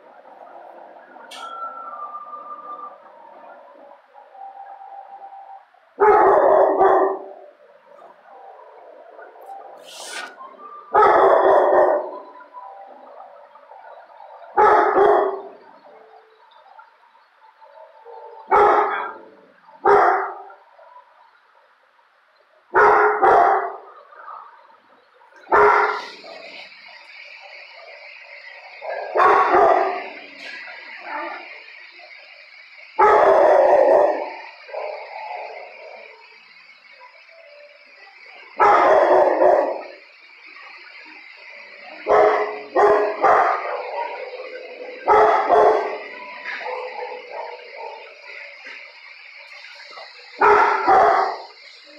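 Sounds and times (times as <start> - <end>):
dog barking: 6.0 - 7.5, 10.9 - 12.2, 14.6 - 15.6, 17.8 - 21.0, 22.7 - 23.9, 25.5 - 26.6, 29.0 - 30.2, 33.0 - 35.1, 38.6 - 40.0, 42.0 - 48.2, 50.4 - 51.5.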